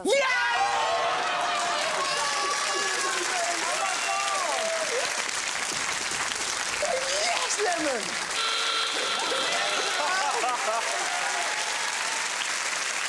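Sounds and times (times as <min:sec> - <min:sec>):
excited whoops and shouts: 0:00.0 - 0:05.2, 0:06.8 - 0:08.0, 0:08.9 - 0:12.3
audience applauding: 0:00.6 - 0:13.0.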